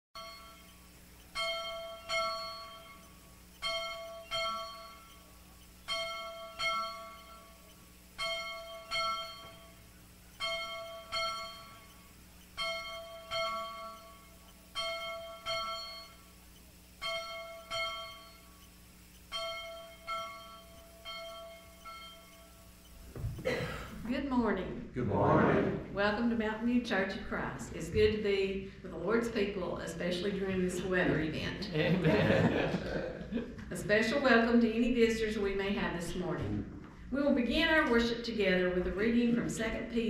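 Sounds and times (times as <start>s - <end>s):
bell chimes ringing: 0.2s - 23.0s.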